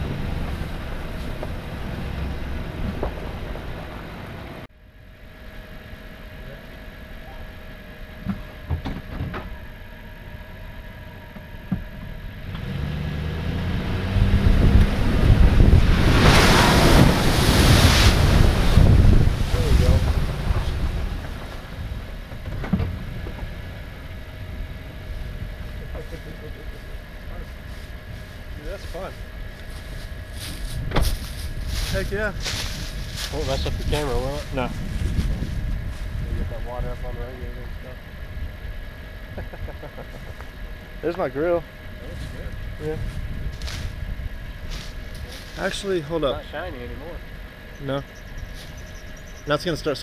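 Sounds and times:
pickup engine idling and revving: 0.0s - 4.7s, 5.5s - 50.0s
truck engine idling: 0.0s - 8.8s
mud and water splashing: 14.9s - 22.4s
sharp thump: 30.9s - 31.2s.

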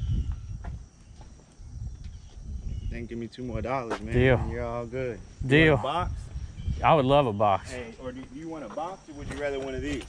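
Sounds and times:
rumbling thumps on microphone: 0.0s - 2.9s
footsteps on asphalt: 0.3s - 2.8s, 8.1s - 10.0s.

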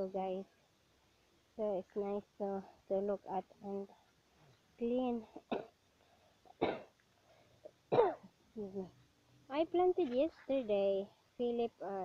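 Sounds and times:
woman clearing throat: 6.6s - 6.9s, 7.9s - 8.3s.

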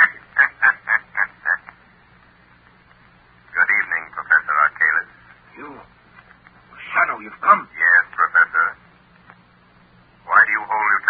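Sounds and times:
man laughing on old radio: 0.0s - 1.8s.

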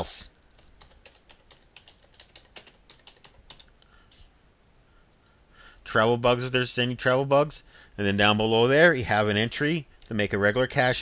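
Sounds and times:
typing on a keyboard: 0.5s - 3.7s.

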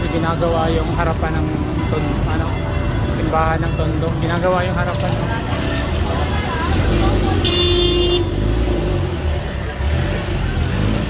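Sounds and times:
vehicle engines in slow traffic: 0.0s - 11.0s
short horn toot: 7.4s - 8.4s.

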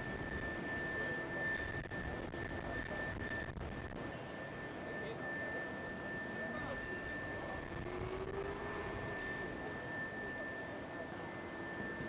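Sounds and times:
continuous rushing noise: 0.0s - 11.2s
jet engine high whine: 0.0s - 12.0s.

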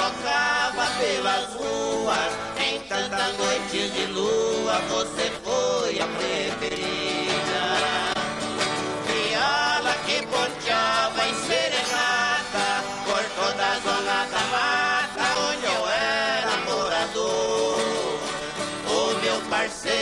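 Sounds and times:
plucked guitar melody with slides: 0.0s - 20.0s
strummed guitar accompaniment: 0.0s - 20.0s.

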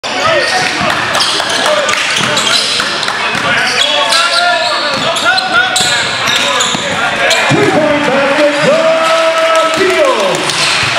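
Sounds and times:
players calling out: 0.0s - 10.9s
sneakers squeaking: 0.2s - 7.8s.

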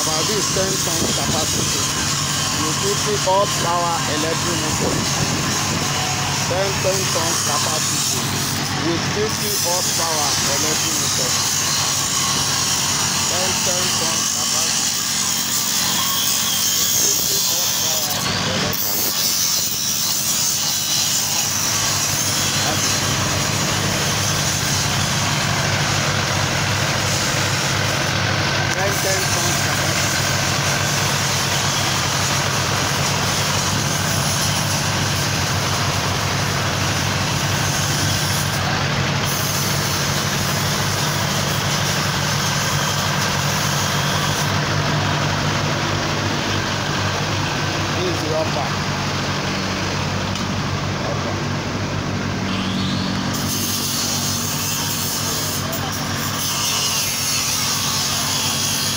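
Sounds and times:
heavy machinery running: 0.0s - 58.9s.

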